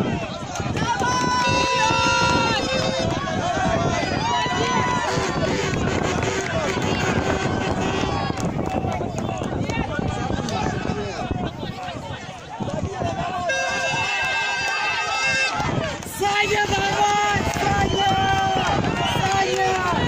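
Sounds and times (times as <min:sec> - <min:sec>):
crowd chatter: 0:00.0 - 0:20.0
spectators shouting encouragement: 0:00.0 - 0:20.0.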